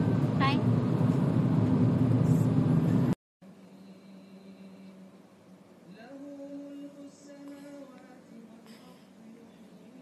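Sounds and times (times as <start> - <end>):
faint steady hum: 3.4 - 10.0.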